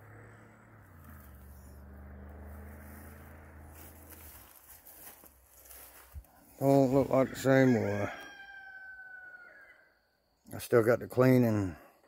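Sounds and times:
rooster crowing: 6.6s - 10.1s.

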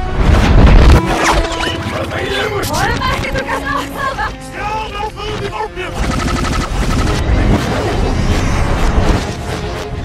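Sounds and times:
low rumbling trailer soundtrack: 0.0s - 10.0s.

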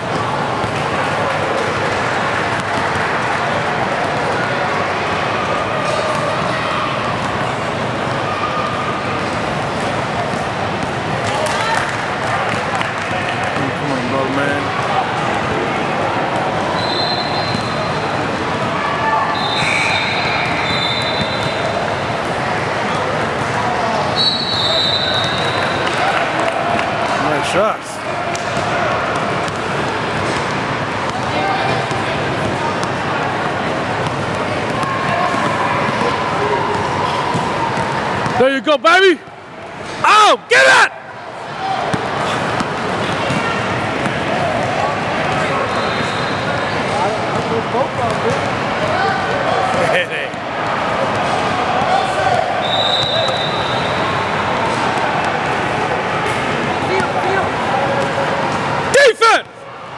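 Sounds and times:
indistinct chatter: 0.0s - 59.9s.

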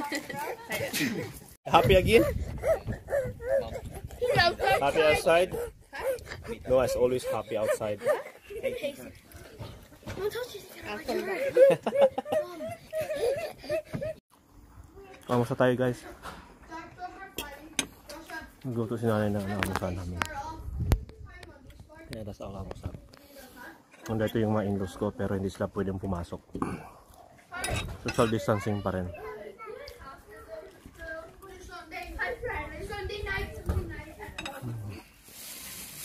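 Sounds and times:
voices talking: 0.0s - 14.1s
tableware clinking: 27.6s - 28.5s, 34.4s - 34.7s.

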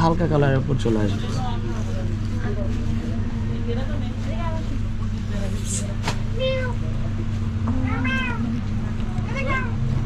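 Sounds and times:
steady low hum: 0.0s - 10.0s
cat meowing: 7.8s - 8.5s, 9.2s - 9.8s.

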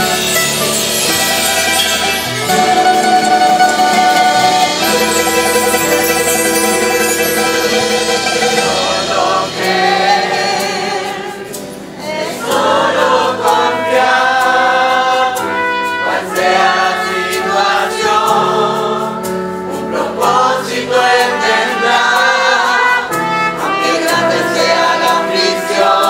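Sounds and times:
accompanying instruments: 0.0s - 26.0s
choir singing a hymn: 1.0s - 26.0s.

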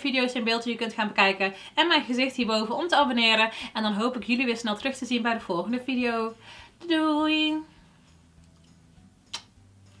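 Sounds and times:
sharp click: 8.6s - 9.6s.

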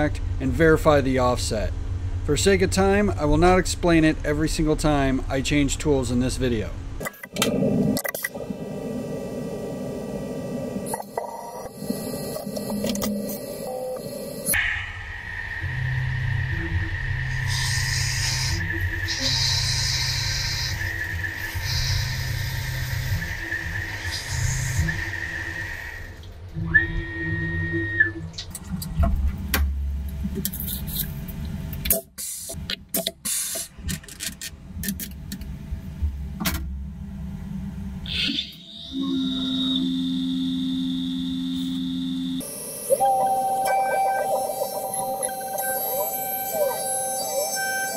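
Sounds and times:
steady high whine: 0.0s - 28.3s, 35.6s - 47.9s
sped-up mill motor whine: 7.6s - 14.6s, 15.2s - 26.2s, 38.6s - 47.9s.

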